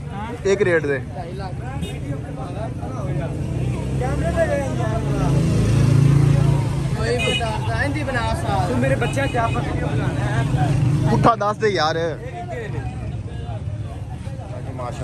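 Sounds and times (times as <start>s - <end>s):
men chattering: 0.0s - 15.0s.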